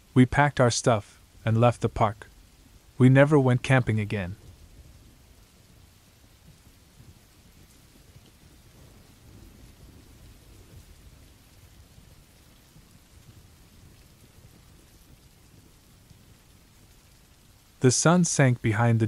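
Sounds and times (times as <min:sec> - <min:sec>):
hiss of falling rain: 0:00.0 - 0:19.0.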